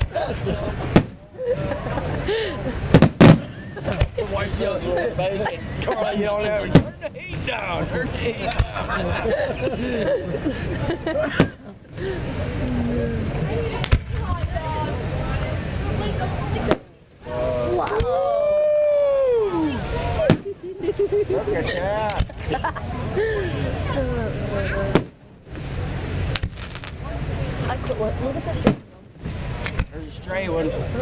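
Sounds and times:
crowd chatter: 0.0 - 31.0
firework shells bursting: 0.8 - 1.2, 2.9 - 4.2, 24.9 - 27.0
faint firework crackles: 0.8 - 1.3, 2.8 - 4.3, 11.3 - 19.0, 19.6 - 20.6, 24.9 - 30.2
firework bang: 0.8 - 1.3, 2.9 - 4.2, 6.7 - 7.5, 11.3 - 11.6, 13.8 - 14.6, 20.2 - 20.6, 24.9 - 27.1, 28.6 - 30.0.

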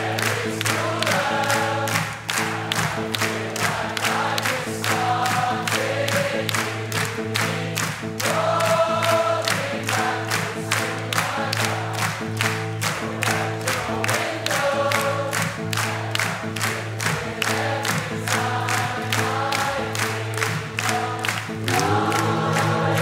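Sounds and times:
group vocals: 0.0 - 23.0.

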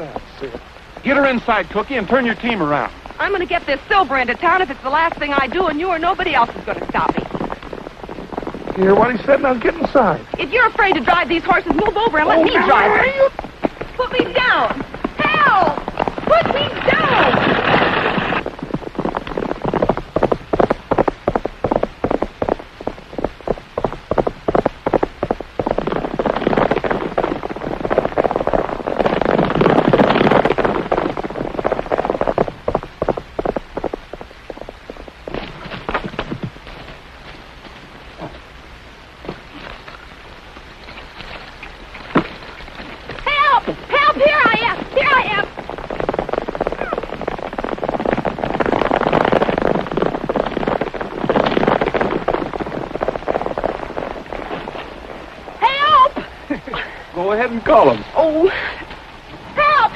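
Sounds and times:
horses galloping on dirt: 0.0 - 59.9.

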